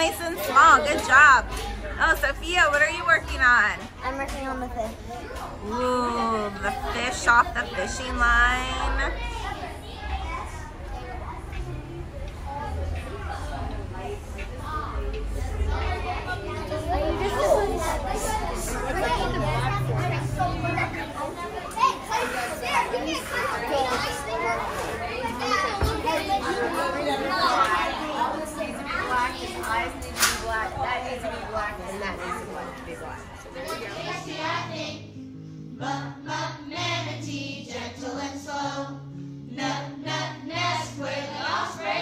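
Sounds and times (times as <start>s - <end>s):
young children chattering: 0.0s - 35.2s.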